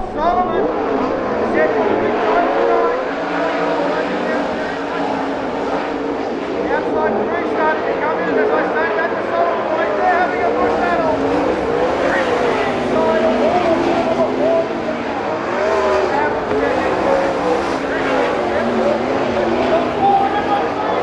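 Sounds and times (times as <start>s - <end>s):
race car engines revving: 0.0s - 21.0s.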